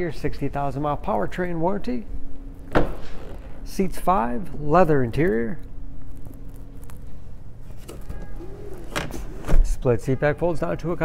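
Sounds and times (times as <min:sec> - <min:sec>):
low steady rumble: 0:00.0 - 0:08.9.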